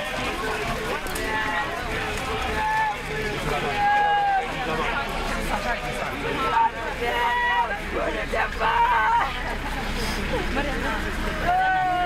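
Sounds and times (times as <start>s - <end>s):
crowd murmur: 0.0s - 12.0s
mourners crying and wailing: 0.0s - 12.0s
long held wail: 11.4s - 12.0s.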